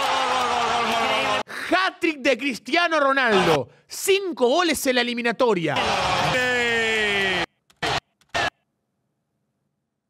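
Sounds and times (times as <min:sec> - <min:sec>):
man shouting: 0:02.9 - 0:03.7, 0:05.8 - 0:08.5.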